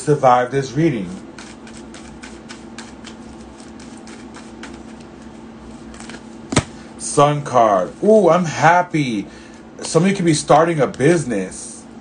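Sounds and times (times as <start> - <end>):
cards being shuffled: 1.4 - 6.7.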